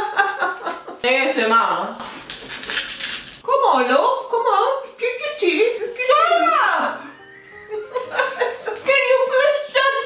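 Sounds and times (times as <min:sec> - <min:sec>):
woman speaking: 0:01.0 - 0:02.0, 0:03.4 - 0:07.2, 0:08.6 - 0:10.0.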